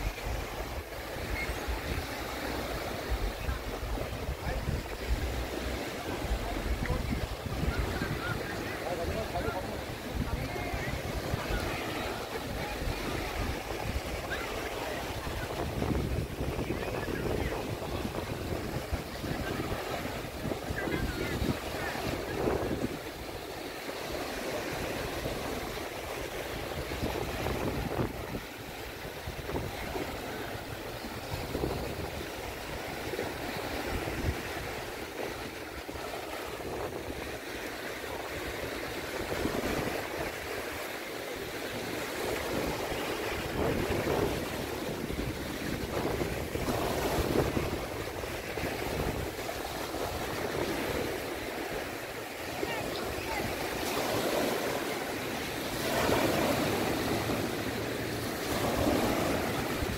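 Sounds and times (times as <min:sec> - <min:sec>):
wind buffeting microphone: 0:00.0 - 0:37.4, 0:41.8 - 0:59.9
sea water washing: 0:00.0 - 0:59.9.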